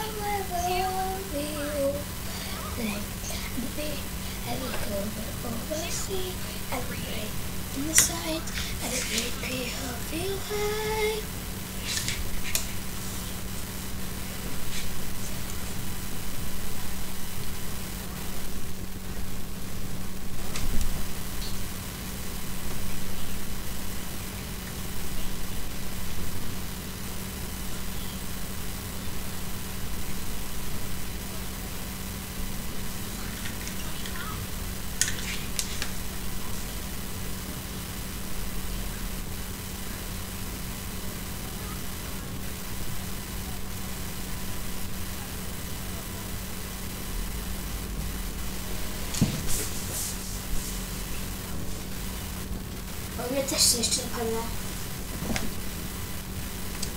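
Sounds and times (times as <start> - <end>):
short scratchy sounds: 0.0 - 13.8
background hiss: 0.0 - 56.9
low hum: 0.0 - 56.9.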